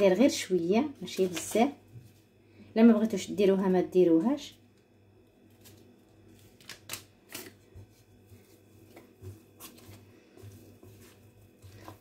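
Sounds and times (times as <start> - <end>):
dough worked by hand in bowl: 0.0 - 4.0, 5.3 - 12.0.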